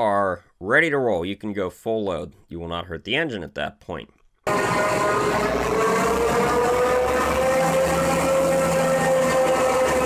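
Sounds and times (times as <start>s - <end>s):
truck diesel engine running: 4.5s - 10.0s.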